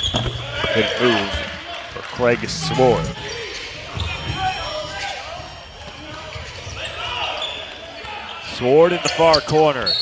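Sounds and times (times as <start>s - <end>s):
scattered voices: 0.4s - 8.3s.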